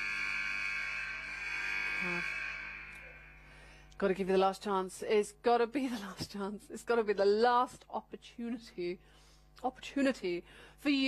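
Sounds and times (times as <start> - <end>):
electronic buzzing drone: 0.0 - 3.8.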